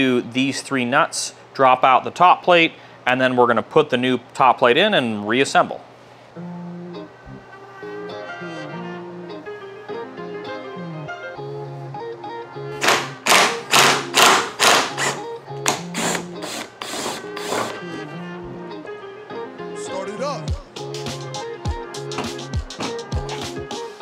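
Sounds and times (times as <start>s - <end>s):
guitar music: 6.4s - 24.0s
impact wrench bursts: 12.8s - 17.8s.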